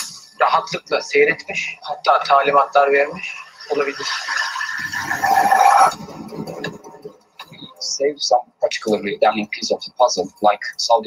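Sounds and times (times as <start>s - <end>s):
noisy sound-design swell: 2.6s - 7.8s.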